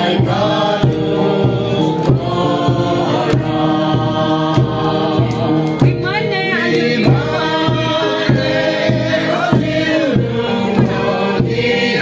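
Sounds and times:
group singing in chorus: 0.0s - 12.0s
steady beat: 0.0s - 12.0s.

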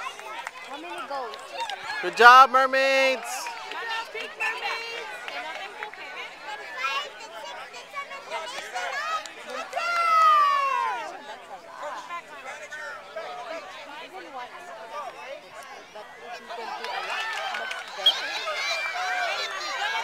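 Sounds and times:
people chattering and calling out: 0.0s - 20.0s.

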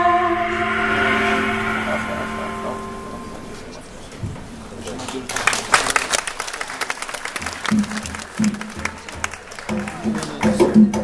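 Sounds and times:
salsa music: 0.0s - 4.0s
audience clapping: 5.0s - 11.0s.

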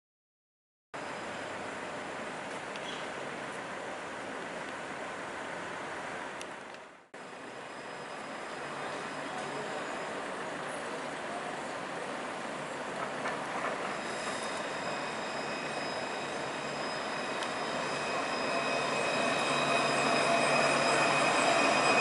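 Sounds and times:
city street traffic: 1.0s - 22.0s.

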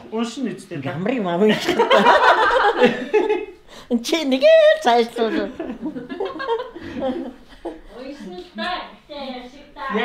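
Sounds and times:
people chuckling and talking: 1.4s - 8.7s
people laughing loudly: 1.5s - 3.6s, 5.2s - 7.9s.

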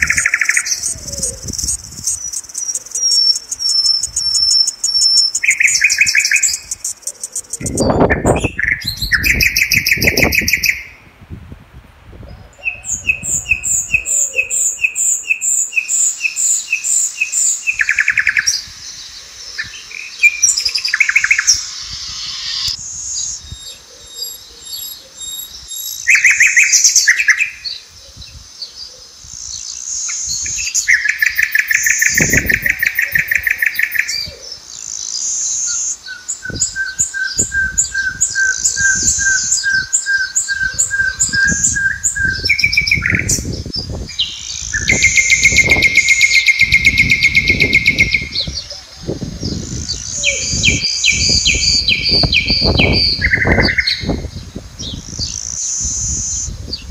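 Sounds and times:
wild birds singing: 0.0s - 11.1s, 12.2s - 56.9s.

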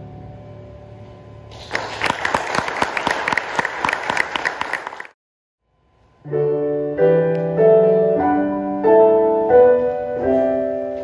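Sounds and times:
audience clapping: 1.5s - 5.2s
piano chord: 5.8s - 11.0s.

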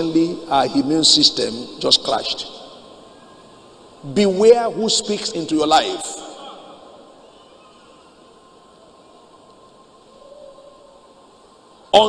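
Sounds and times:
faint high hum: 0.0s - 12.0s.

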